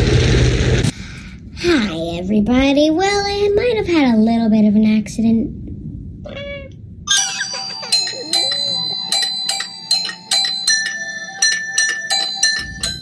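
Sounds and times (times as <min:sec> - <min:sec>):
bell-like chime tune: 0:07.1 - 0:13.0.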